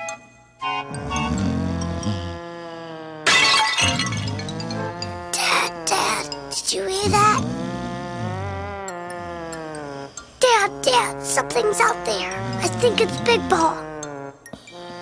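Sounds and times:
cartoon background music: 0:00.0 - 0:02.5, 0:03.8 - 0:15.0
comic snoring: 0:00.8 - 0:15.0.

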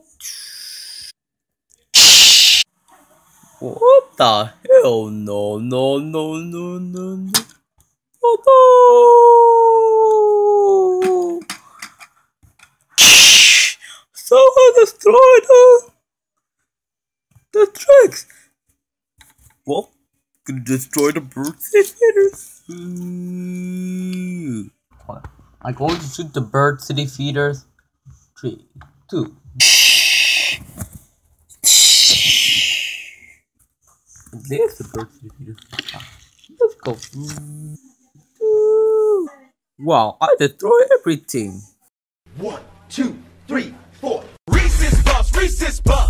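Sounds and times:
child making explosion noise: 0:02.0 - 0:02.6, 0:13.0 - 0:13.8, 0:31.6 - 0:33.1.

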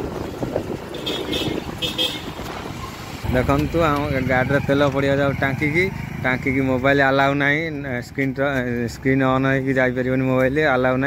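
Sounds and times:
wind on microphone: 0:00.0 - 0:03.3
passing traffic: 0:00.0 - 0:11.0
scooter engine running: 0:01.3 - 0:07.0.

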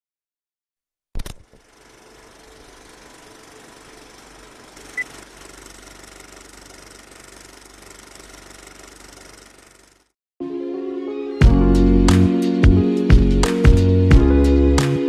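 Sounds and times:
film projector clatter: 0:01.2 - 0:10.1.

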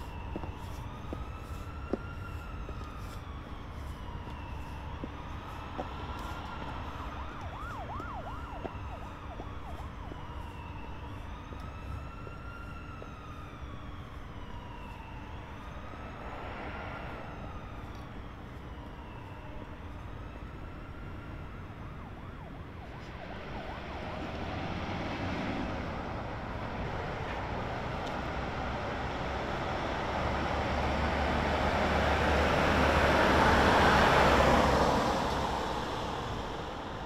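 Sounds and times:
distant siren wailing: 0:00.0 - 0:37.0
car passing by: 0:16.1 - 0:17.7.

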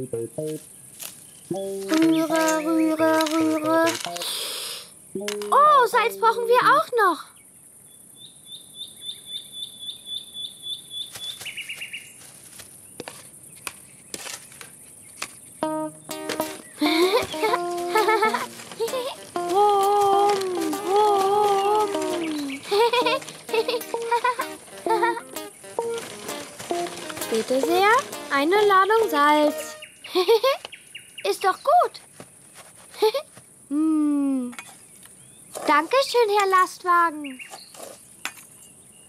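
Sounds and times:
bouncy cartoon tune: 0:01.5 - 0:04.3, 0:05.2 - 0:07.0, 0:15.6 - 0:29.8
high ticks: 0:15.6 - 0:29.9.

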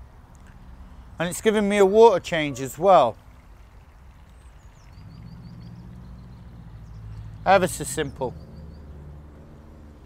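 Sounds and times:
bird chirping: 0:00.4 - 0:10.0.

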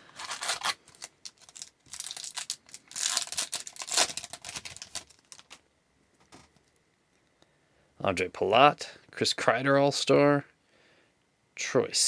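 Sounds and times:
wrapper tearing and crinkling: 0:00.0 - 0:05.6.

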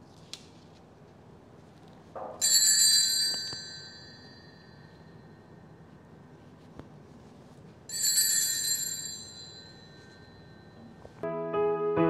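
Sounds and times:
altar bell ringing: 0:02.4 - 0:05.6, 0:07.9 - 0:11.0.

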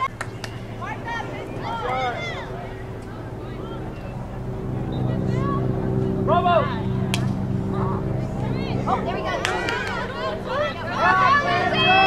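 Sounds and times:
steady engine hum: 0:00.0 - 0:12.0.

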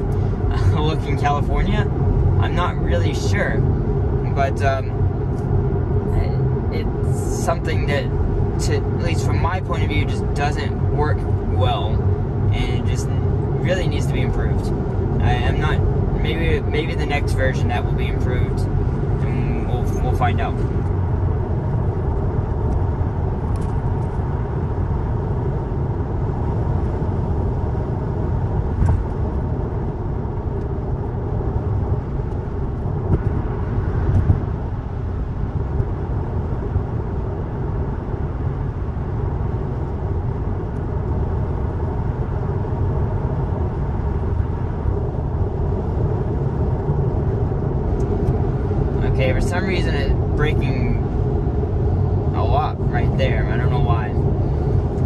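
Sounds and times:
tyre and wind noise in car: 0:00.0 - 0:55.0.

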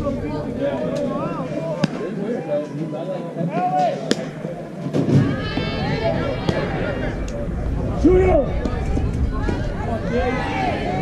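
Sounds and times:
people calling out and cheering: 0:00.0 - 0:11.0.

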